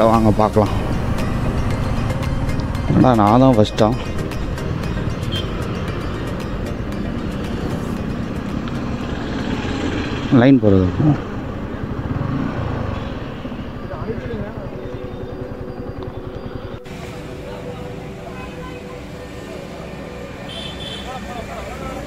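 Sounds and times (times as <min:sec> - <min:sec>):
motorcycle engine running: 0:00.0 - 0:22.0
faint voices: 0:13.7 - 0:22.0.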